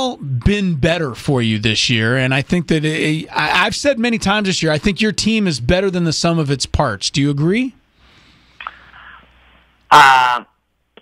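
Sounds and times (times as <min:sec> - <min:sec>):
man saying uh: 0:09.9 - 0:10.5.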